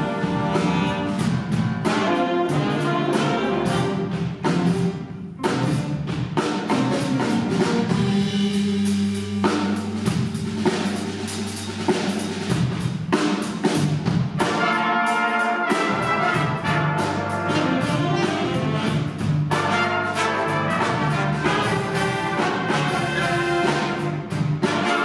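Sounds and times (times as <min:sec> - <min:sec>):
jazz big band playing: 0:00.0 - 0:25.0.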